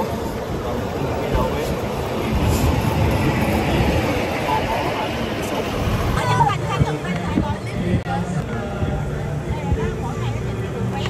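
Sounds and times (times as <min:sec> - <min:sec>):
air buffeting microphone: 0:00.0 - 0:11.0
road noise: 0:00.0 - 0:11.0
wind rumble: 0:00.0 - 0:11.0.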